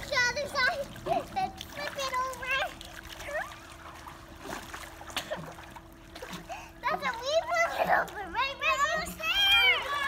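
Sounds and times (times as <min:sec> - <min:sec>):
water splashing in a pool: 0:00.0 - 0:10.0
child calling out: 0:07.0 - 0:10.0.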